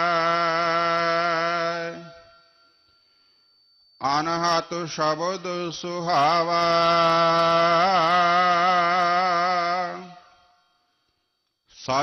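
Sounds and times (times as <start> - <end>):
man singing long note: 0.0 - 2.3, 4.0 - 10.4.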